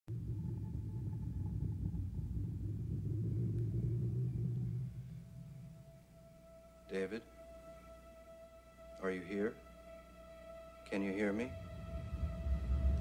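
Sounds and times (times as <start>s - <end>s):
low rumbling drone: 0.0s - 13.0s.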